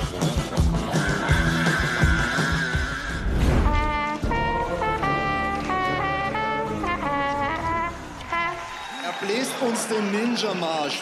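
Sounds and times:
solo trumpet march tune: 3.6s - 9.1s.

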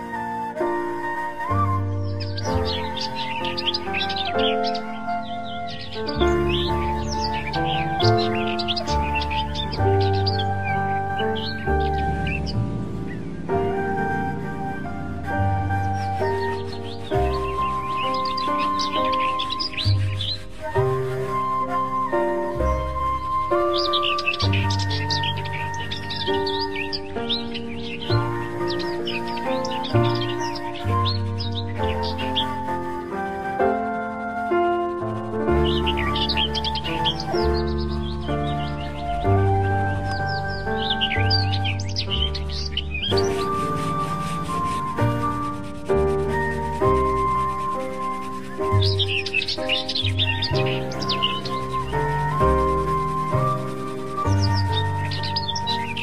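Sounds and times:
birds chirping: 0.0s - 56.0s
instrumental background music: 0.0s - 56.0s.

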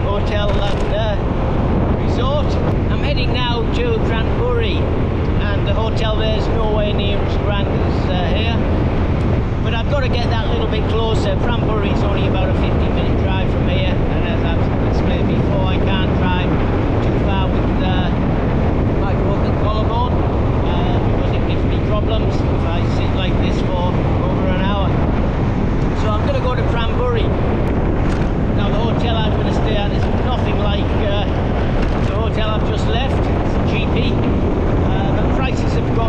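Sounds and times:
man talking: 0.0s - 8.8s, 9.6s - 25.1s, 25.9s - 27.4s, 28.5s - 36.0s
wind rushing over microphone: 0.0s - 36.0s.

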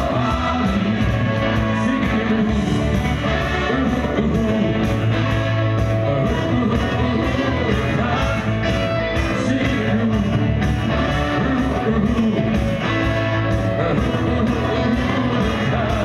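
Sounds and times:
drums on a steady beat: 0.0s - 16.0s
electric guitars: 0.0s - 16.0s
singer: 0.0s - 16.0s.

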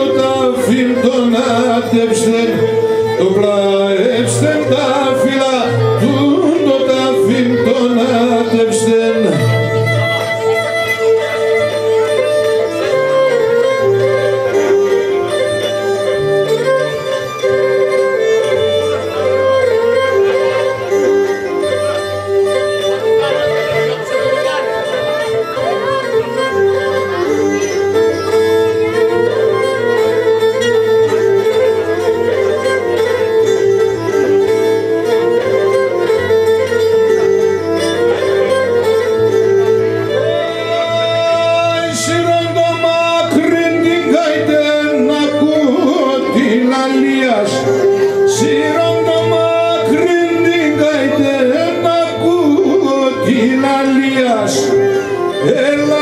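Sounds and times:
bowed lyra melody over drone: 0.0s - 56.0s.

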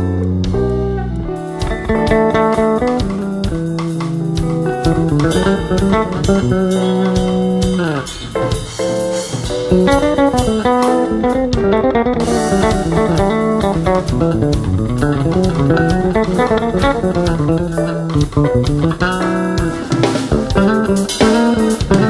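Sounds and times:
bass guitar line: 0.0s - 22.0s
lead guitar playing runs: 0.0s - 22.0s.

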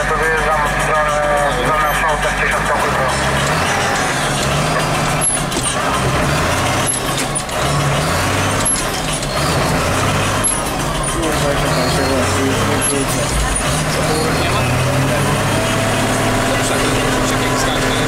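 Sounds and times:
tractor engine heard from cab: 0.0s - 18.0s.

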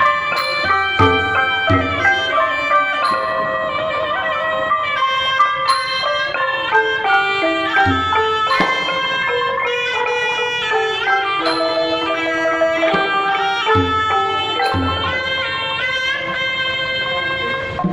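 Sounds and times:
gong circle: 0.0s - 3.8s, 7.7s - 9.4s, 13.7s - 15.6s
xylophone rapid struck notes: 0.0s - 3.8s, 5.6s - 9.7s, 11.4s - 15.5s
barrel drum: 0.0s - 4.0s, 5.7s - 15.7s
reedy oboe melody: 0.0s - 17.9s.

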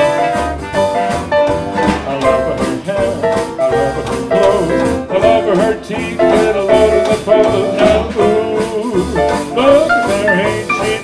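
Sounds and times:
brass melody: 0.0s - 11.0s
small jazz band playing swing: 0.0s - 11.0s.

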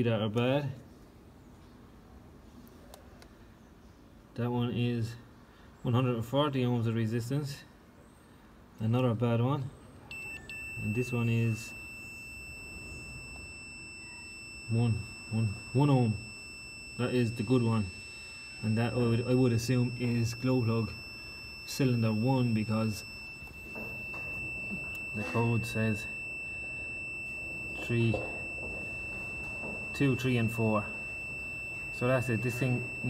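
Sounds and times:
multimeter continuity beep: 10.0s - 33.0s
high-pitched electronic tone: 10.1s - 33.0s.

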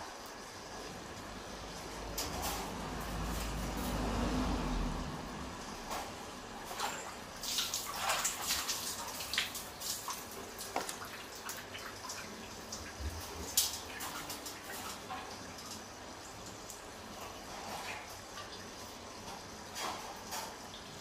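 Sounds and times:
water splashing in a plastic tub: 6.0s - 19.1s.

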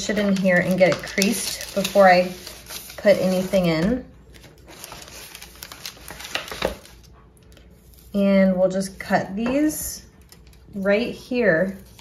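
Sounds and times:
wax paper crinkling: 0.0s - 8.2s, 11.6s - 12.0s.

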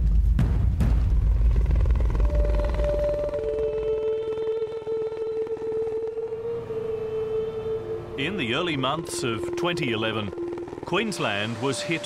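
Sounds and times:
helicopter rotor chop: 1.0s - 6.9s, 7.7s - 12.0s
steady tone: 1.2s - 12.0s.

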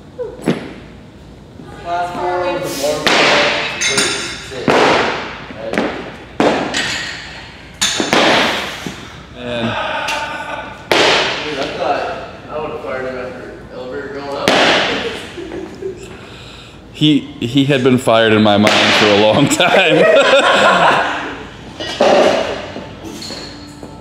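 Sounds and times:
barbells thudding on platforms: 4.6s - 8.7s.

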